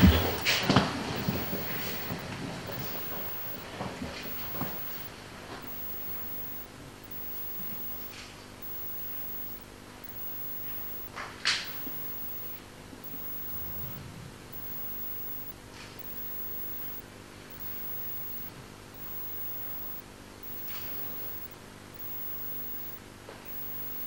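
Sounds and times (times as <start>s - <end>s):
low hum and hiss: 0.0s - 24.0s.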